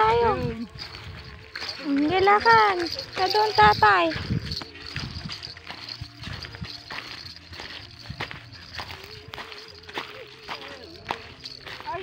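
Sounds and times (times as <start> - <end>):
footsteps on dry soil: 0.0 - 12.0.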